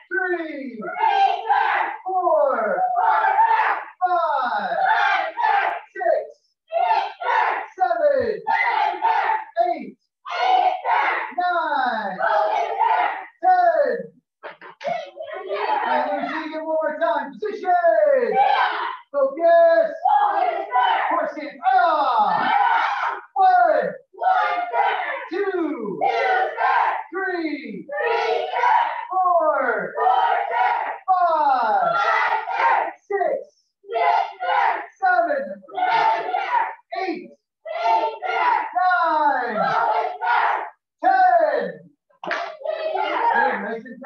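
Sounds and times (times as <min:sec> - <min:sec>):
children shouting in unison: 0:00.9 - 0:01.9, 0:04.8 - 0:05.8, 0:06.7 - 0:07.6, 0:08.5 - 0:09.4, 0:10.3 - 0:11.4, 0:12.2 - 0:13.2, 0:14.8 - 0:16.2, 0:18.4 - 0:19.1, 0:20.0 - 0:21.1, 0:22.1 - 0:23.3, 0:24.2 - 0:25.3, 0:26.0 - 0:27.0, 0:27.9 - 0:29.1, 0:30.0 - 0:31.0, 0:33.9 - 0:34.9, 0:35.7 - 0:36.8, 0:37.7 - 0:38.8, 0:39.4 - 0:40.7, 0:42.6 - 0:43.6.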